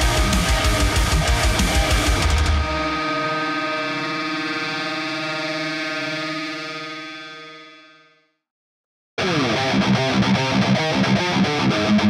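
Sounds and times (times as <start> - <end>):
heavy metal guitar and drums: 0.0 - 7.3, 9.2 - 12.0
guitar chord ringing out: 0.0 - 8.1.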